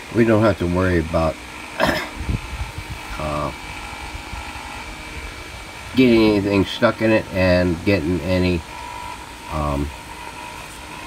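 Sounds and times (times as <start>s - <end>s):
mechanical hum with low rumble: 0.0s - 11.0s.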